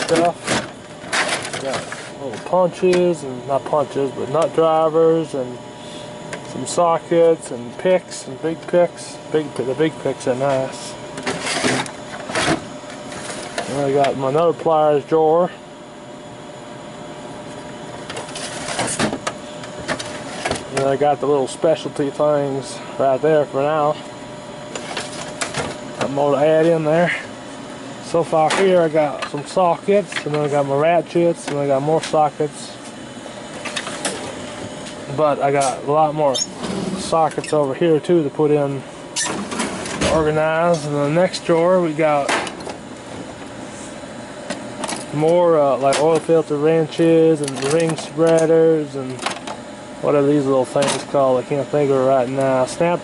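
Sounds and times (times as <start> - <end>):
metal drawer sliding with tools rattling: 0.0 - 2.6, 11.2 - 13.9
steady background noise: 0.0 - 53.0.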